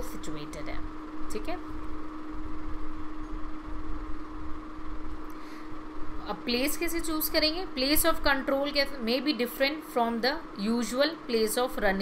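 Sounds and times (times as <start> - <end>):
constant low hum: 0.0 - 12.0.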